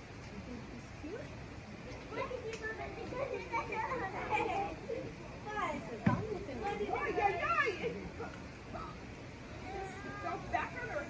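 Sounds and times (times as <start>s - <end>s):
children and people talking: 0.0s - 11.0s.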